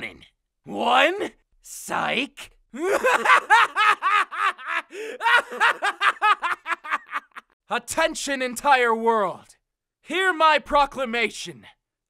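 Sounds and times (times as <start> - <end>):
man's villain laugh: 2.8 - 7.6.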